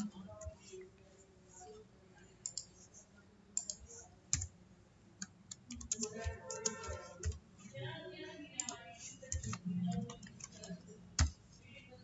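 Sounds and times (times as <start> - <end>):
computer keyboard keystrokes: 3.6 - 4.6, 5.2 - 7.4, 8.6 - 11.4.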